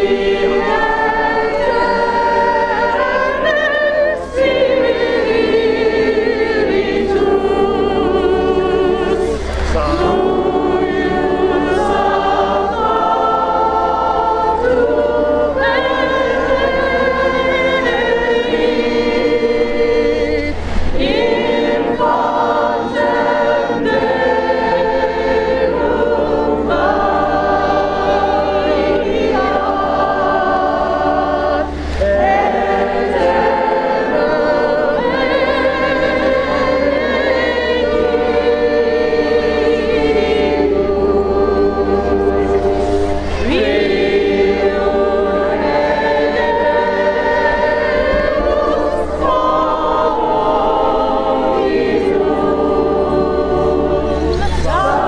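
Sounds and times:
group singing in harmony: 0.0 - 55.0.

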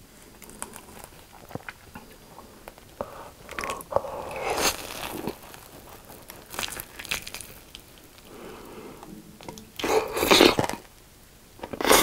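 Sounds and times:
crunchy biting and chewing: 3.4 - 8.3.

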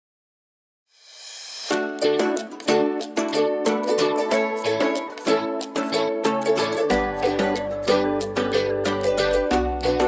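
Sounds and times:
ukulele strumming chords: 1.7 - 10.0.

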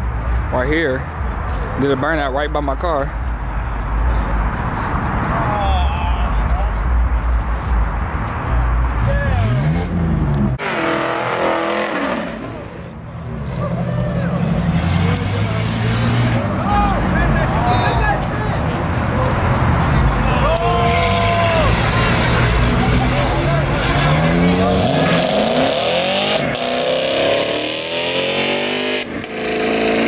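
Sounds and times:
car engine revving hard: 9.4 - 12.9, 21.0 - 30.0
spectators shouting: 20.0 - 23.8.

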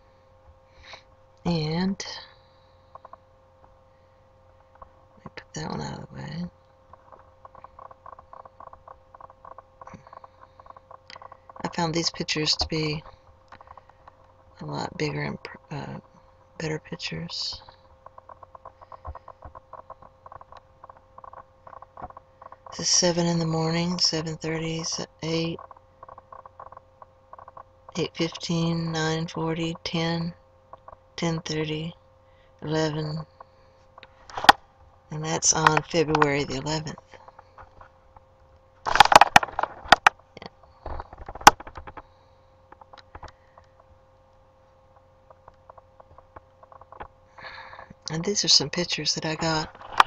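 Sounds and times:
faint electrical hum: 0.0 - 50.0.

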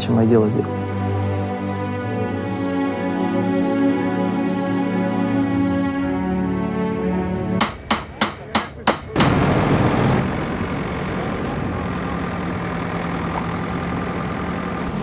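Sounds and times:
hammer striking metal: 7.6 - 9.5
excavator engine humming: 9.0 - 15.0.

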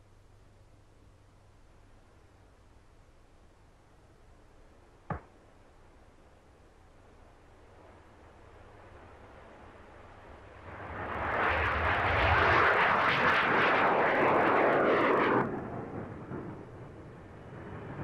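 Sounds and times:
jet taking off: 9.7 - 18.0.

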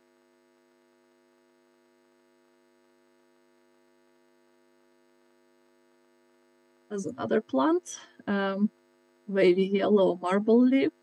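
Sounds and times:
faint mains hum: 0.0 - 11.0.

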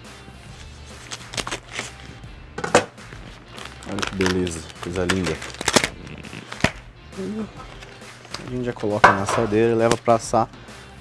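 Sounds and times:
background music: 0.0 - 11.0
plastic film crinkling and snapping: 0.8 - 2.1, 3.0 - 6.8, 7.6 - 10.2.

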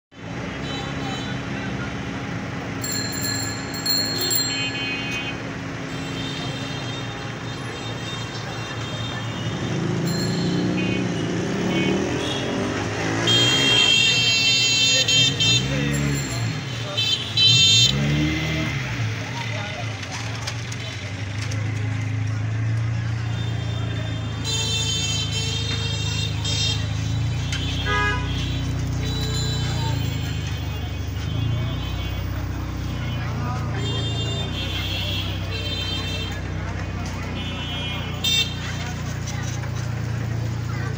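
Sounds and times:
vehicle engines running: 0.1 - 40.9
murmur of voices: 0.2 - 40.9
car horn toots: 4.1 - 18.4, 23.2 - 36.6.

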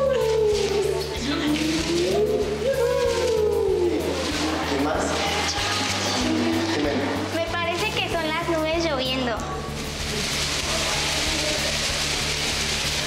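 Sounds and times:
young voices singing a wavering uuu: 0.0 - 6.7
background music: 0.0 - 13.0
newspaper strips rustling: 0.0 - 13.0.

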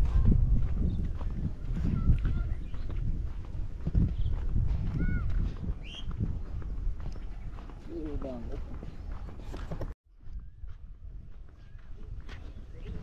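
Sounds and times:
footsteps on dirt path: 0.0 - 13.0
bird chirps: 5.8 - 6.1.

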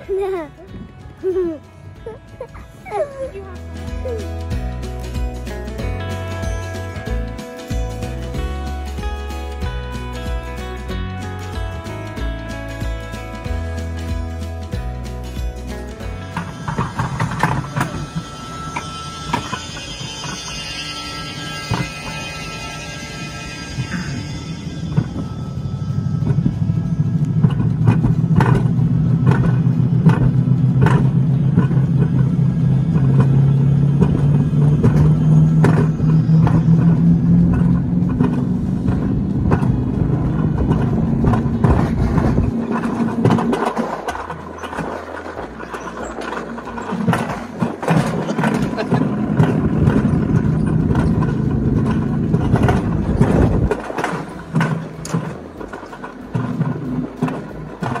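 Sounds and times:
sled wheels rumbling on rail: 0.0 - 58.0
clicks and rattles: 27.2 - 58.0.

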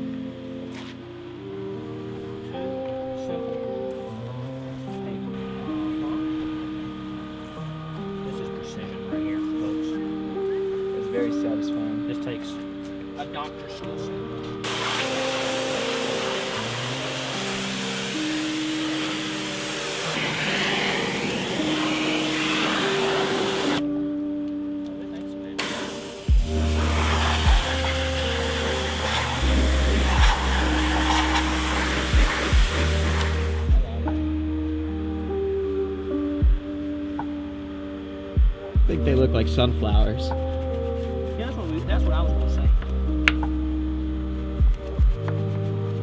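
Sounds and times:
water spraying from hose: 14.6 - 23.8, 25.6 - 33.7
background music with bass beat: 25.6 - 46.0.

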